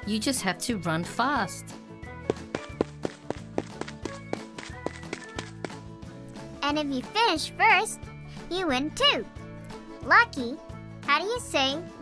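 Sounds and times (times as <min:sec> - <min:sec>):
light background music: 0:00.0 - 0:12.0
cartoon running footsteps: 0:02.3 - 0:05.9.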